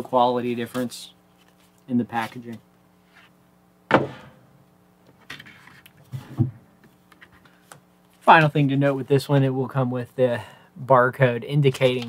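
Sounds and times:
cardboard thump: 0:03.9 - 0:04.4.

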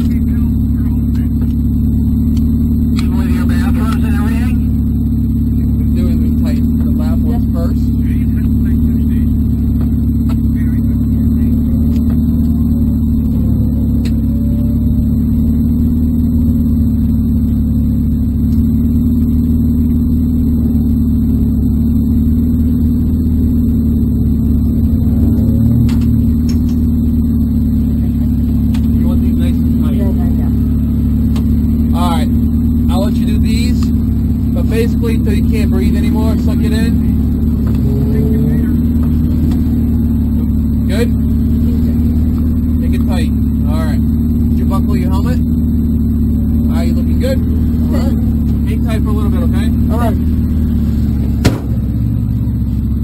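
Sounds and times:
car engine idling: 0:00.0 - 0:53.0.

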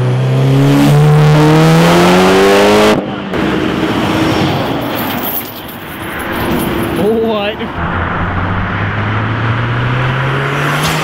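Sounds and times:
road traffic noise: 0:00.0 - 0:11.0
car engine accelerating past: 0:07.8 - 0:11.0.

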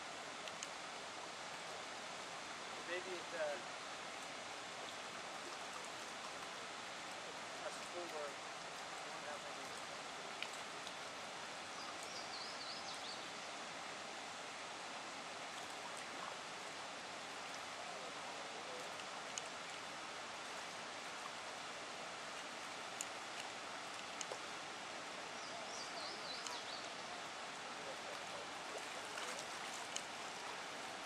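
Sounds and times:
water rushing onto rocks: 0:04.3 - 0:12.2, 0:15.4 - 0:31.0.

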